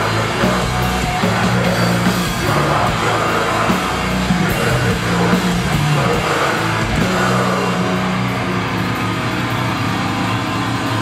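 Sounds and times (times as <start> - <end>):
hardcore band playing live: 0.0 - 11.0.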